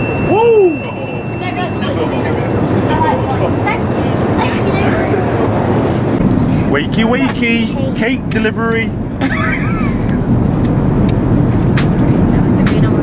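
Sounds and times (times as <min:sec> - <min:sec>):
airliner cabin engine roar: 0:00.0 - 0:13.0
faint voices murmuring: 0:00.5 - 0:09.0.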